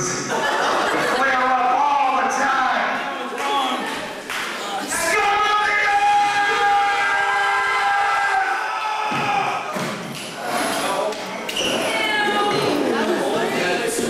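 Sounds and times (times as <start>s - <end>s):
wavering yell: 4.9s - 9.7s.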